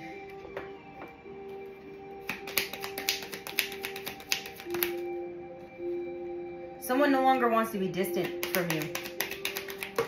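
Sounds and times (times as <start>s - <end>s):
background music with held tones: 0.0s - 10.0s
cards being shuffled: 2.3s - 5.0s, 8.2s - 10.0s.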